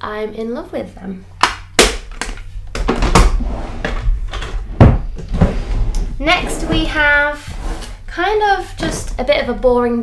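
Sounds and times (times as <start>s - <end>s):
drawers sliding and knocking: 2.8s - 8.1s.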